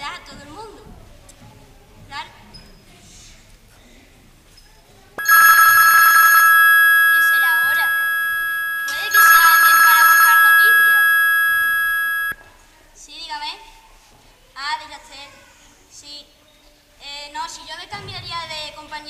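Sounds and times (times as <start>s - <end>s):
telephone bell ringing: 5.2s - 12.4s.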